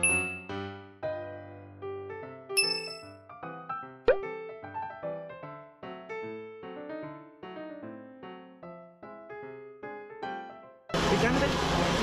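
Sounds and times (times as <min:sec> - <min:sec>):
light keyboard music: 0:00.0 - 0:11.3.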